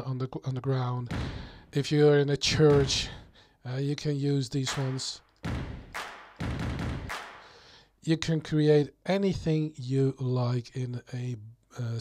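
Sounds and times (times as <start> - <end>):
boot stomp with echo: 1.1 - 1.6, 2.6 - 3.2, 4.7 - 7.5
sharp hand clap: 4.7 - 7.5.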